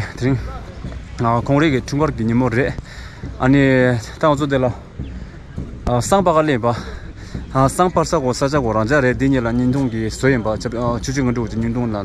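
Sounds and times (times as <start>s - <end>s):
man talking: 0.0s - 12.0s
steady low rumble: 0.0s - 12.0s.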